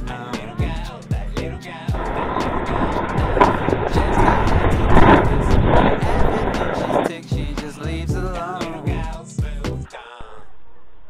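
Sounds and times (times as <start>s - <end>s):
sled scraping down snow: 2.0s - 7.1s.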